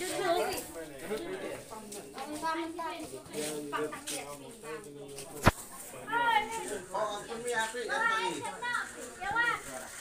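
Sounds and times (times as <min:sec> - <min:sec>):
quiet murmur of voices: 0:00.0 - 0:10.0.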